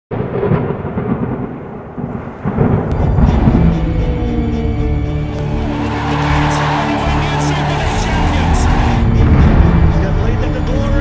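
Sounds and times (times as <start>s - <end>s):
deep rumble: 0.1s - 5.7s, 8.9s - 11.0s
steady music tones: 2.5s - 11.0s.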